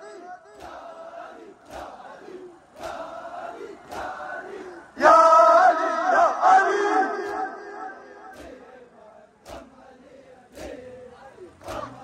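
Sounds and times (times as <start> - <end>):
crowd chanting: 0.0 - 12.0.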